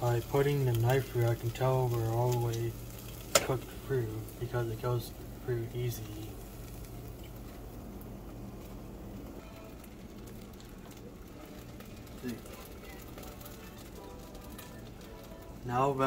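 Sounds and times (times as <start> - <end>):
low hum: 0.0 - 15.9
sauce simmering with crackles and pops: 0.0 - 16.0.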